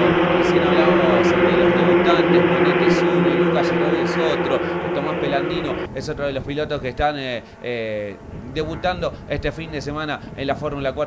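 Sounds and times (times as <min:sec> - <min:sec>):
race car engines droning: 0:00.0 - 0:11.0.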